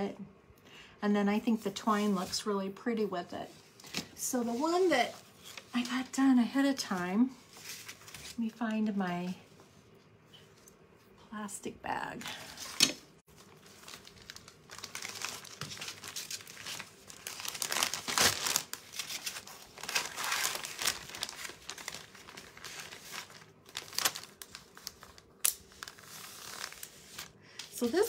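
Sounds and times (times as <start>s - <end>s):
plastic bag crinkling: 13.3s - 28.0s.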